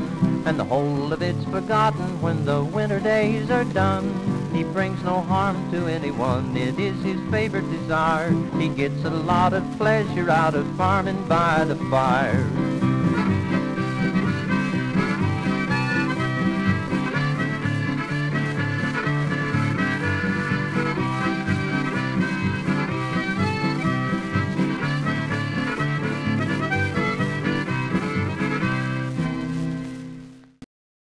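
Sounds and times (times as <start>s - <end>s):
harmonica: 0.0s - 30.0s
acoustic guitar: 0.0s - 30.7s
old record playback: 0.0s - 30.7s.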